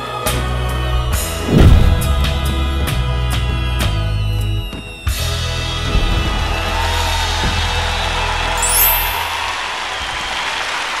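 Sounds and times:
bass and drums: 0:00.4 - 0:08.5
applause-like hiss: 0:06.6 - 0:11.0.

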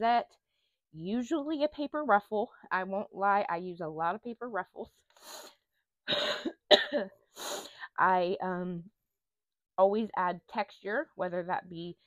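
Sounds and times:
woman coughing: 0:06.1 - 0:07.2.

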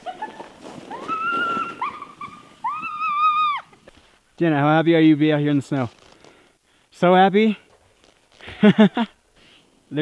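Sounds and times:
girl squealing high-pitched: 0:00.9 - 0:03.8.

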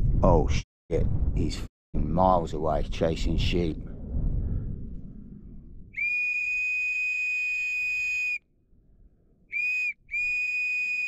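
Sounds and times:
whistle blasts: 0:05.9 - 0:08.4, 0:09.5 - 0:11.0.

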